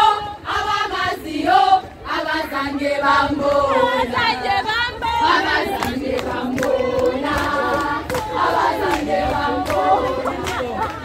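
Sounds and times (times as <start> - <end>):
young women singing in unison: 0.0 - 11.0.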